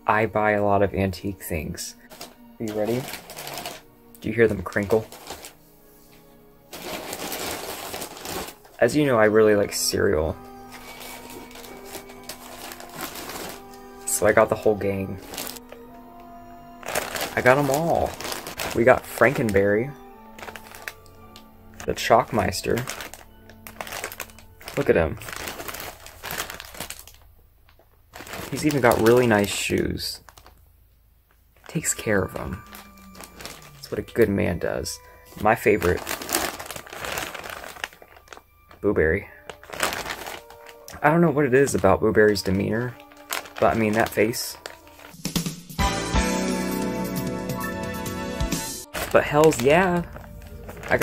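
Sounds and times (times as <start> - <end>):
quiet background music: 0.0 - 51.0
plastic bags crinkling: 2.0 - 5.6, 6.7 - 15.9, 16.8 - 30.6, 31.3 - 45.3, 48.9 - 51.0.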